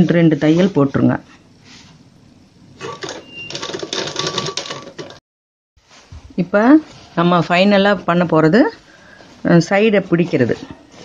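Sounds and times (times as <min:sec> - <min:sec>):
sewing machine stitching: 0:02.8 - 0:05.2.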